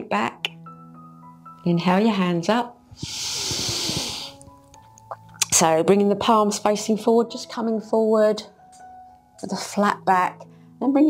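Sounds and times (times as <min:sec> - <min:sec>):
soft background music: 0:00.0 - 0:11.0
person breathing in: 0:02.9 - 0:04.5.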